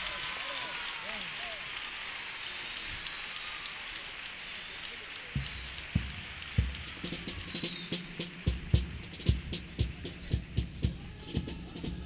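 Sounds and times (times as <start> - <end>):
audience applause: 0.0 - 12.0
bass drum steady beat: 5.4 - 12.0
sharp percussion strikes: 5.4 - 12.0.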